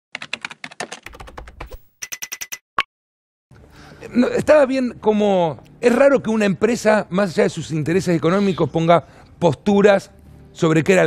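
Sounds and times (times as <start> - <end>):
rapid keyboard typing clicks: 0.1 - 1.8.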